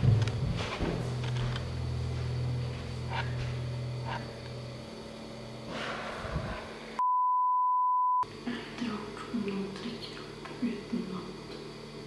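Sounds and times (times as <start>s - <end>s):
low hum: 0.0s - 10.7s
censor bleep: 7.0s - 8.2s.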